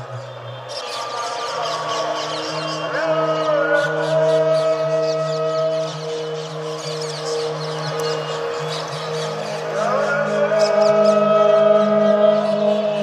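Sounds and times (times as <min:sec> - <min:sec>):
ambient synth chords: 0:00.0 - 0:13.0
high birdsong chirps: 0:00.0 - 0:13.0.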